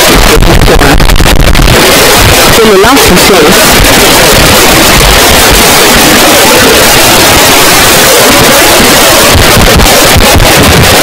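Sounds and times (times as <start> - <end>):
loud static hiss: 0.0 - 11.0.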